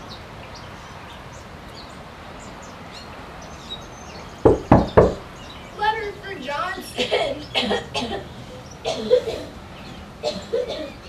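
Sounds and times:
loud sharp knocks: 4.4 - 5.3.

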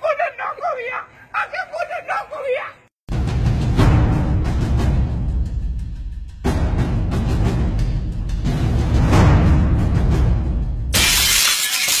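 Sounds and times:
drum-heavy music: 3.1 - 10.8.

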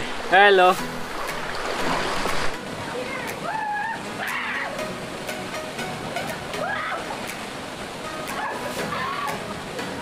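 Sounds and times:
waterfall rushing: 0.0 - 10.0.

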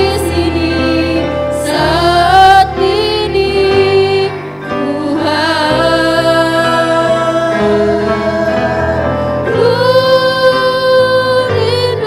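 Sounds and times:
backing music: 0.0 - 12.0
women singing worship song: 0.0 - 12.0.

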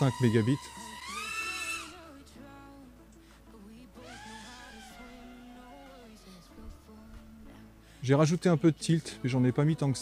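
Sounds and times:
quiet background music: 0.0 - 10.0.

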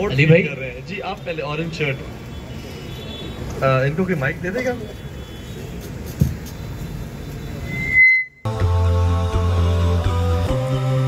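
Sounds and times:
short high beep: 7.6 - 8.5.

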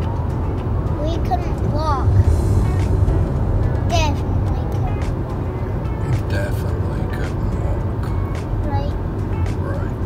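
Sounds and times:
car cabin road and engine rumble: 0.0 - 10.0
child's voice: 1.0 - 2.3, 3.8 - 5.3, 8.6 - 10.0.

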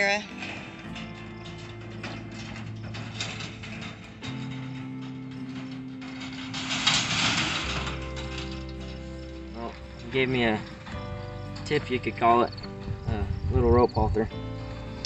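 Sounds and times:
trailer rattling and clanking: 0.0 - 15.0
vehicle driving on dirt: 0.0 - 15.0.

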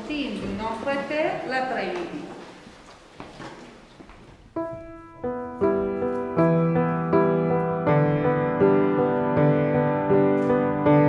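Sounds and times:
grand piano playing: 4.5 - 11.0.

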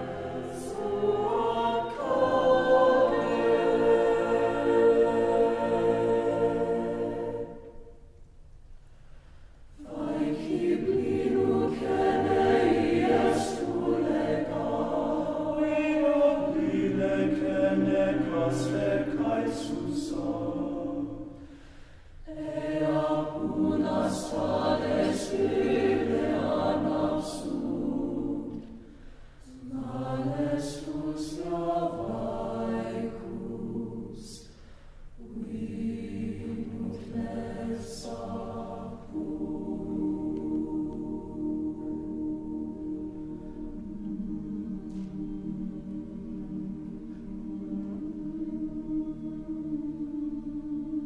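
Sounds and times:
mixed choir singing unaccompanied: 0.0 - 8.1, 9.8 - 51.0.

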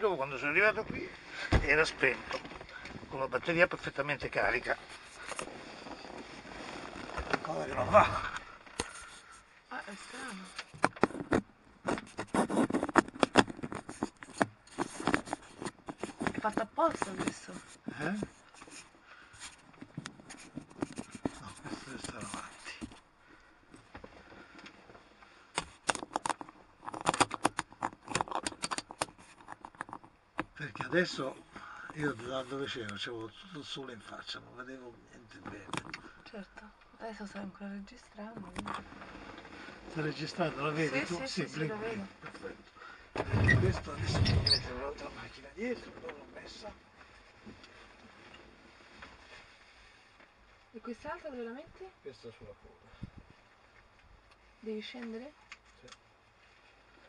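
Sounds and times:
clicks taps and scrapes: 10.4 - 23.0, 25.5 - 32.0, 35.4 - 36.3
fingers handling camera: 10.5 - 17.6, 19.5 - 23.0, 25.5 - 30.1.

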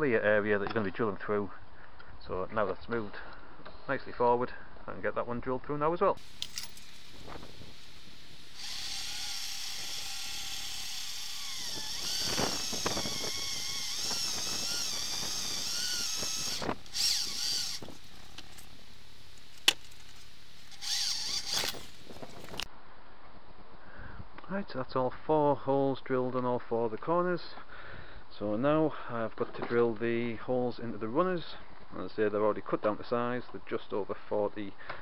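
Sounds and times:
electric drill whining: 6.2 - 18.7, 20.6 - 22.7.

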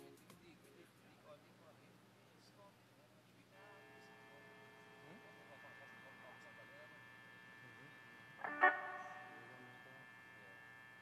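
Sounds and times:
faint electrical hum: 0.0 - 11.0
band chord: 8.4 - 10.0.

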